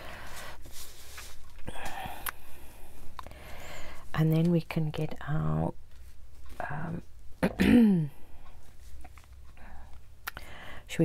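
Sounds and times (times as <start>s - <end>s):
paper rustling: 0.0s - 1.7s.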